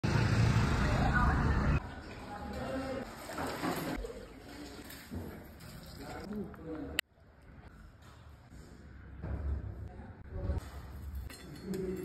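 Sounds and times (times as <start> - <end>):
street noise rumble: 0.0 - 1.9.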